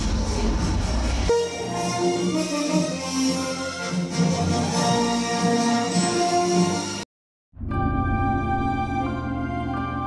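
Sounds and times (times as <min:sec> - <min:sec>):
orchestral film music: 0:01.3 - 0:07.0, 0:07.6 - 0:10.0.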